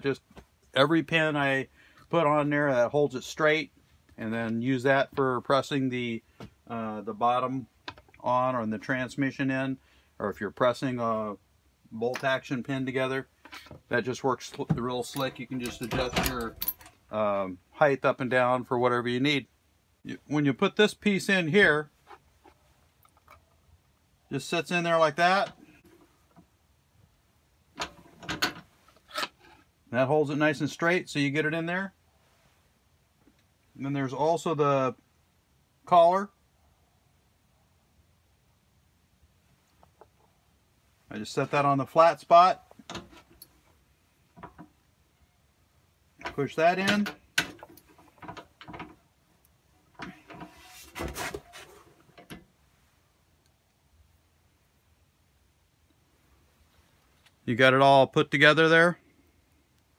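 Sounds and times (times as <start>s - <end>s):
clicks and knocks on metal table: 27.8s - 29.4s
fabric rubbing on microphone: 50.4s - 52.0s.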